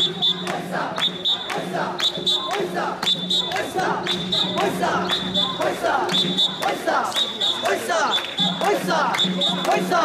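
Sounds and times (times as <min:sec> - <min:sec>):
group chanting and shouting: 0:00.0 - 0:10.0
rhythmic hand clapping: 0:00.0 - 0:10.0
high whistle blasts: 0:01.0 - 0:08.5.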